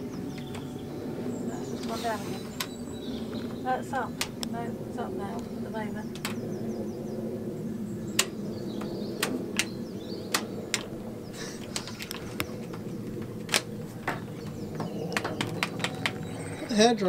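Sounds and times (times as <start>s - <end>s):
steady low hum: 0.0s - 17.0s
trip switch clicks: 6.1s - 6.5s, 8.1s - 11.0s, 11.6s - 16.4s.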